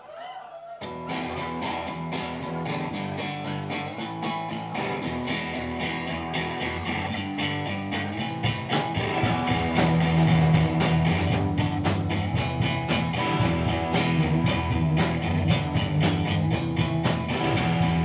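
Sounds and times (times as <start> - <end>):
drums: 0.8 - 18.0
electric guitar: 0.8 - 18.0
live rock band: 0.8 - 18.0.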